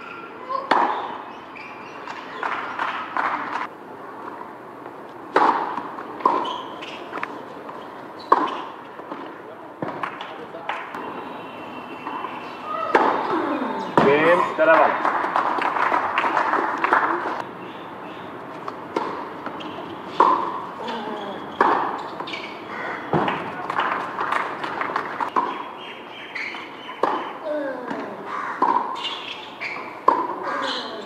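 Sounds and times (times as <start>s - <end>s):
tennis ball hit and bouncing: 0.6s - 4.4s, 5.1s - 11.2s, 12.0s - 17.5s, 18.5s - 25.7s, 26.4s - 30.4s
loud voices: 9.5s - 17.4s.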